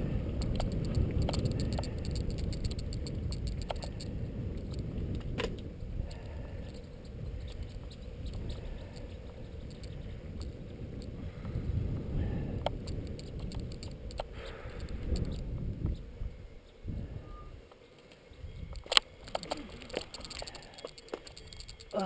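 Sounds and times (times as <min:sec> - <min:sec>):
bicycle clicks: 0:00.0 - 0:16.8, 0:17.6 - 0:22.0
wind rumbling on microphone: 0:00.0 - 0:22.0.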